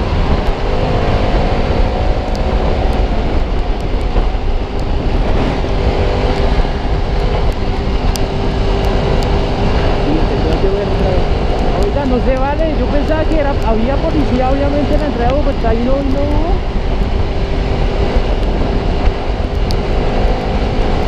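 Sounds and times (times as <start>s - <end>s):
motorcycle engine running: 0.0s - 21.0s
wind rush on microphone: 0.0s - 21.0s.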